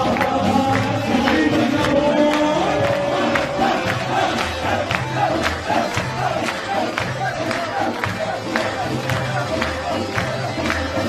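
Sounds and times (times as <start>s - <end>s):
men shouting and chanting: 0.0s - 11.0s
rhythmic hand claps: 0.0s - 11.0s.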